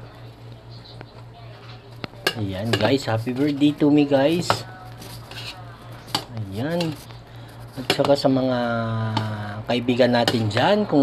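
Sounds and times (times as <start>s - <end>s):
steady low hum: 0.0s - 11.0s
noodles rustling in a pot: 2.5s - 8.3s.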